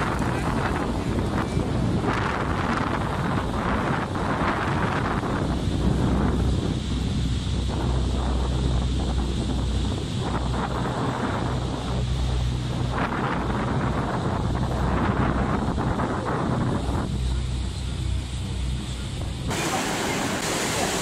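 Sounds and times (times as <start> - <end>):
churning and falling water: 0.0 - 21.0
deep rumble: 0.0 - 21.0
wind buffeting microphone: 0.0 - 21.0.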